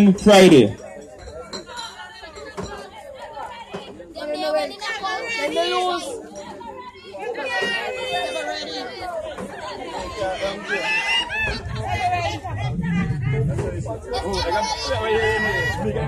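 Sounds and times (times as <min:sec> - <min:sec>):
people chattering: 0:00.0 - 0:16.0.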